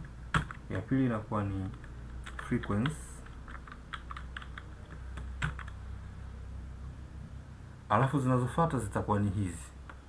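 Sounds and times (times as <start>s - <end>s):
keyboard typing: 0.0s - 0.8s, 1.4s - 5.8s.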